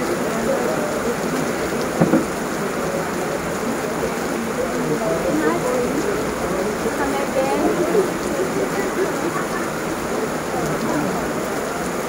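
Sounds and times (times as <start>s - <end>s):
heavy rain falling: 0.0s - 12.0s
brief thump: 2.0s - 2.3s.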